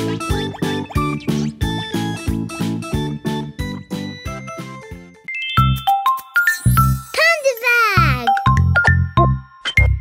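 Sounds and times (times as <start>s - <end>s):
cartoon music with bass: 0.0s - 7.1s, 7.8s - 10.0s.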